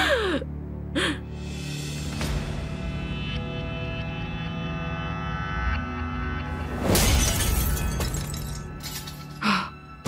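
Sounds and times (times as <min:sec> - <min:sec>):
dramatic background music: 0:00.0 - 0:10.0
glass shattering: 0:06.8 - 0:09.4.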